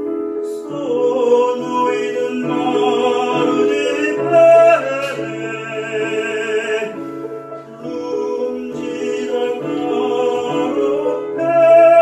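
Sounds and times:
grand piano accompaniment: 0.0s - 12.0s
tenor singing operatically: 0.8s - 12.0s.

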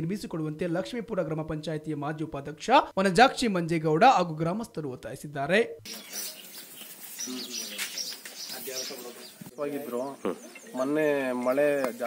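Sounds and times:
birds chirping faintly: 5.8s - 12.0s
man talking: 7.2s - 12.0s.

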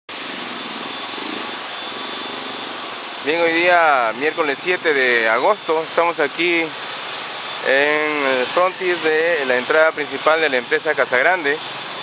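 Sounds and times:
small engine running: 0.1s - 12.0s.

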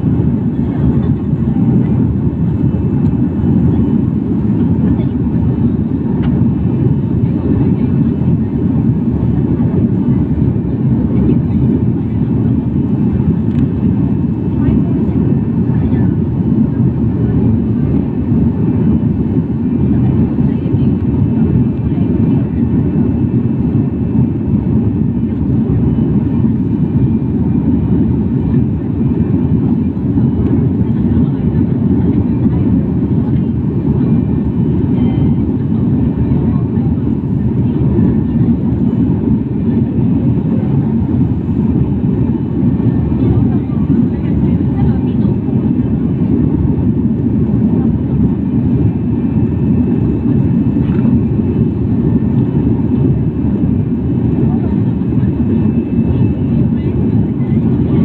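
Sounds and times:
jet airliner cabin rumble: 0.0s - 58.0s.

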